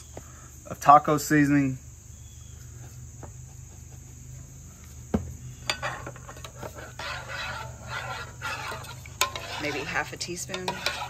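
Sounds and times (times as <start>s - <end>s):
high insect chirring: 0.0s - 11.0s
spoon stirring rice: 5.6s - 11.0s.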